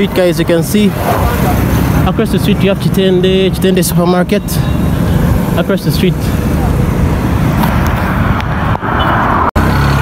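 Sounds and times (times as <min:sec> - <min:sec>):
motor vehicles passing: 0:00.0 - 0:10.0.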